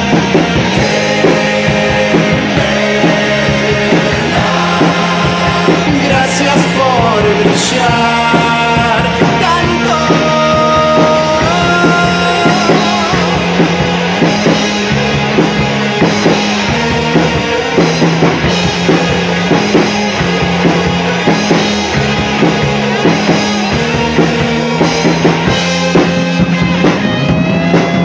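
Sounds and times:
drum kit beat: 0:00.0 - 0:28.0
electric bass: 0:00.0 - 0:28.0
electric guitars: 0:00.0 - 0:28.0.

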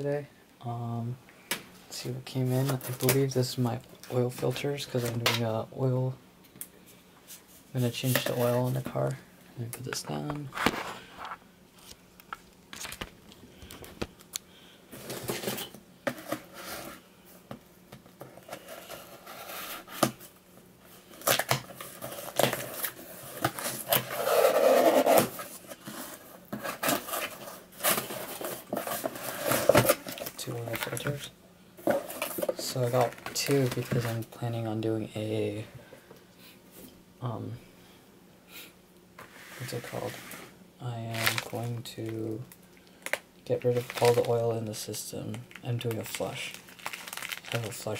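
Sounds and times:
man talking: 0:00.0 - 0:01.2, 0:01.9 - 0:06.2, 0:07.7 - 0:10.6, 0:30.2 - 0:31.4, 0:32.5 - 0:35.8, 0:37.2 - 0:37.6, 0:40.8 - 0:42.5, 0:43.5 - 0:46.6, 0:47.5 - 0:47.9
cardboard scraping and rustling: 0:15.0 - 0:17.0, 0:21.4 - 0:31.2
plastic mailer bag crinkling: 0:26.6 - 0:34.3, 0:41.0 - 0:47.9.

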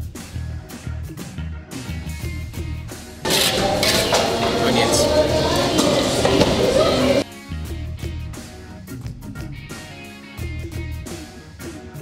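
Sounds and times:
background guitar music: 0:02.0 - 0:12.0
dishes and cutlery clinking: 0:03.3 - 0:07.2
voices: 0:03.3 - 0:07.2.

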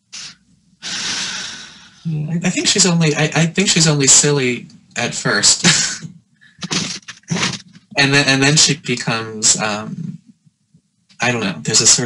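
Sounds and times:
man breathing: 0:00.1 - 0:02.1.

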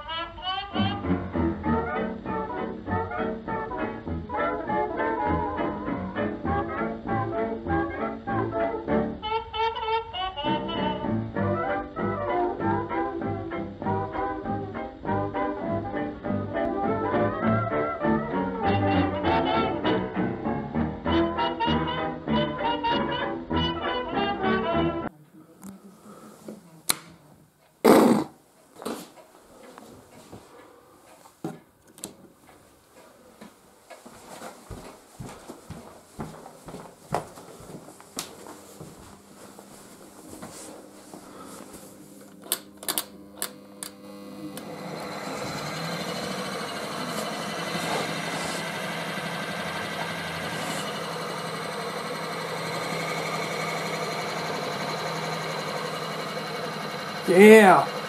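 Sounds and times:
switches and leads clicking: 0:26.9 - 0:27.2, 0:31.8 - 0:32.2, 0:42.2 - 0:45.5
electric motor whirring: 0:42.2 - 0:58.0.

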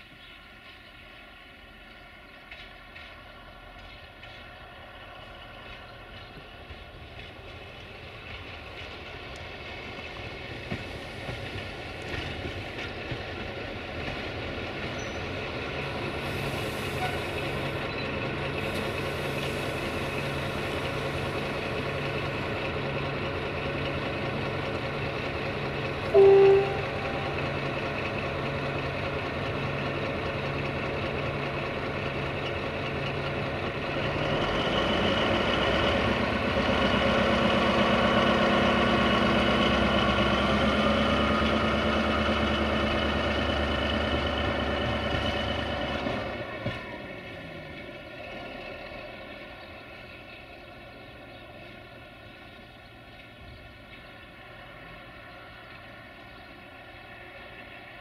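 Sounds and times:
locomotive engine drone: 0:00.0 - 0:58.0
locomotive horn toot: 0:26.1 - 0:27.8.

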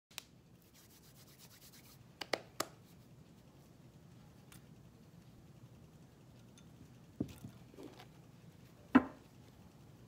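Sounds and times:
hands rubbing on a table: 0:00.6 - 0:06.4.

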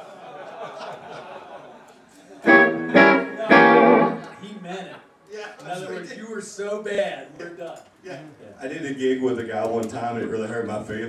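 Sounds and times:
electric guitar strummed chord: 0:02.5 - 0:04.4.

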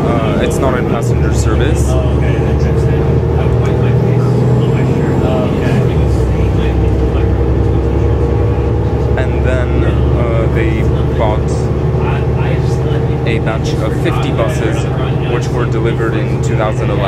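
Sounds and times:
background voices: 0:00.0 - 0:17.0
bus diesel engine drone: 0:00.0 - 0:17.0.

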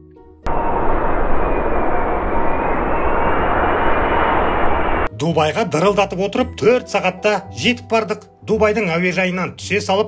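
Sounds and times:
faint high engine whine: 0:00.5 - 0:05.1
jet engines roaring: 0:00.5 - 0:05.1.

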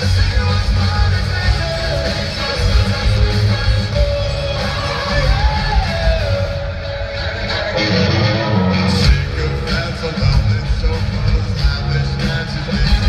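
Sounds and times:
live rock band: 0:00.0 - 0:13.0.

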